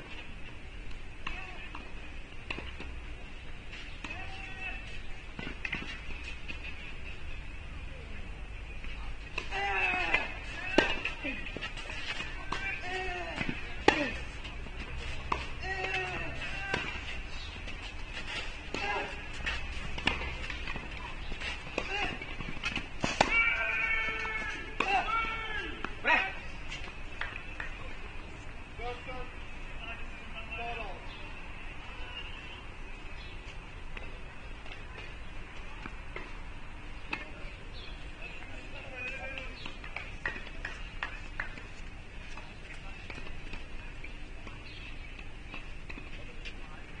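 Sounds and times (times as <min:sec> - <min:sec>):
voices: 0:00.0 - 0:47.0.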